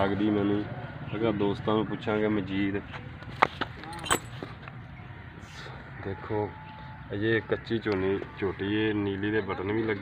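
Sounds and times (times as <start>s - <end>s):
metal chain clinking: 3.8s - 4.4s.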